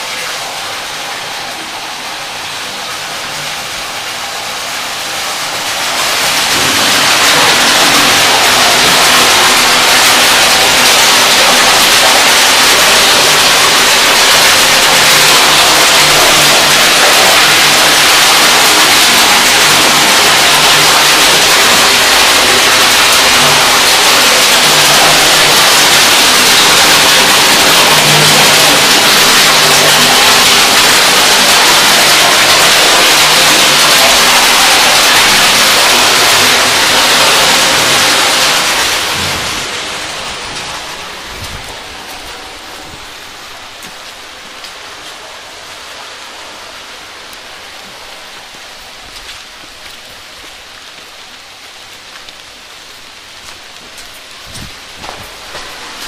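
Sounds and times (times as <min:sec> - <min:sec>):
water rushing through pipes: 0:00.0 - 0:56.0.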